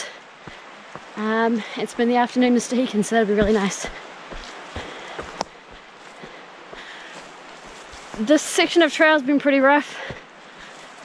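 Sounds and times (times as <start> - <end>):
footsteps on dirt trail: 0.0 - 11.0
rustle of brush and pack: 2.8 - 9.2.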